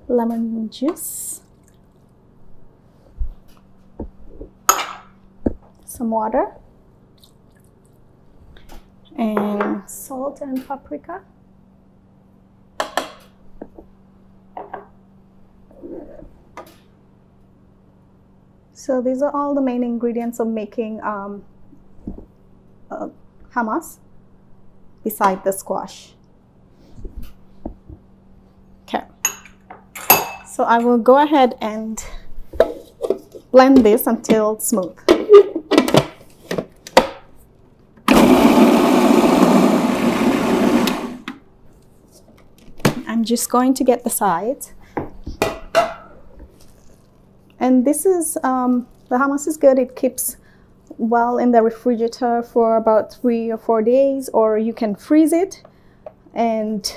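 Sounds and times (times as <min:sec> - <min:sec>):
bowls clinking against steel bowl: 0:29.2 - 0:30.5
food processor running: 0:38.1 - 0:41.3.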